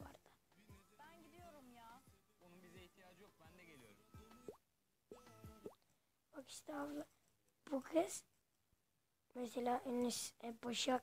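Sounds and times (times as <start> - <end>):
faint music: 0.0 - 8.3.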